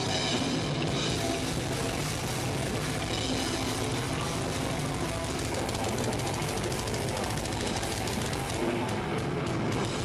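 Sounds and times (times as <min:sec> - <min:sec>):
fast drum pattern: 0:00.0 - 0:10.0
metal band playing live: 0:00.0 - 0:10.0.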